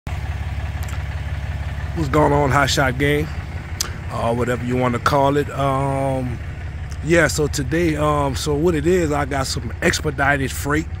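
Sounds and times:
truck engine idling: 0.1 - 11.0.

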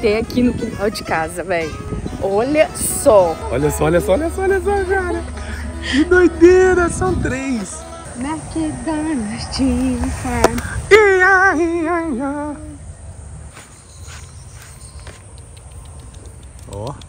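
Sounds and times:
faint outdoor background: 0.0 - 17.0.

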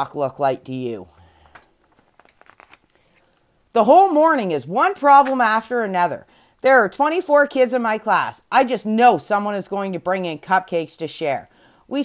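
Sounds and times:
soft paper crackles: 1.3 - 3.5
page turning rustle: 1.4 - 3.3.

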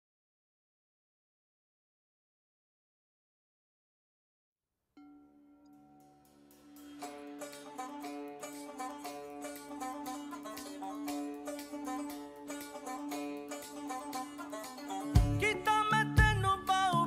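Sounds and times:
banjo picking notes: 5.0 - 17.0
steady held drone note: 5.7 - 15.4.

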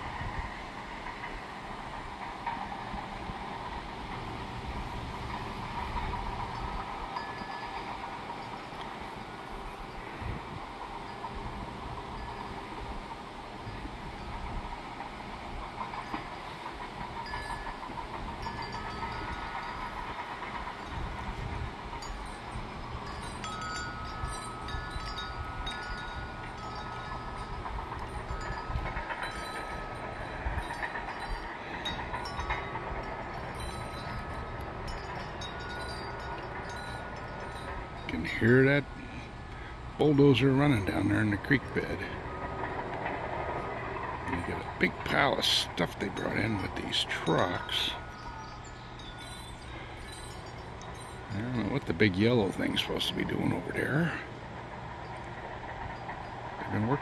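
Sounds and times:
distant bulldozer rumble: 0.0 - 57.0
high chime-like ringing tones: 20.8 - 39.3, 44.4 - 54.1.

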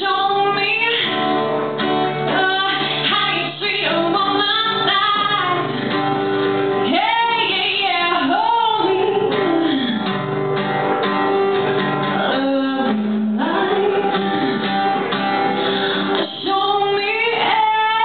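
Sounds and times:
woman singing: 0.0 - 6.0, 6.7 - 10.3, 12.0 - 15.1, 16.0 - 18.0
strummed acoustic guitar: 0.0 - 18.0.

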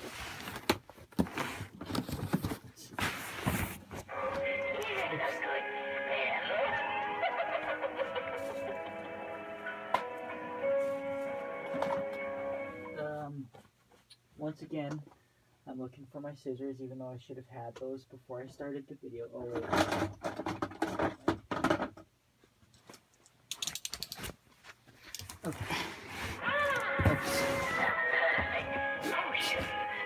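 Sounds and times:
tune playing: 8.3 - 13.0.

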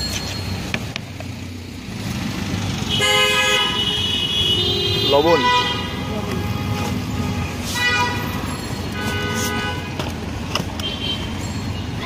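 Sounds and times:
street traffic rumble: 0.0 - 12.0
vehicle horn: 2.9 - 10.0.

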